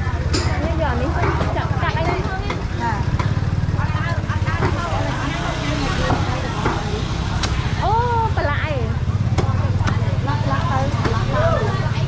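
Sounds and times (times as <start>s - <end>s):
chatter of voices: 0.0s - 12.0s
motorcycle engine idling: 0.0s - 12.0s.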